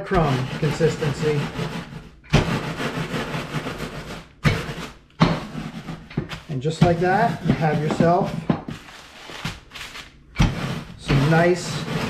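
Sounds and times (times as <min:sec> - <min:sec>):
rolling pin crushing cereal in bag: 0:00.0 - 0:12.0.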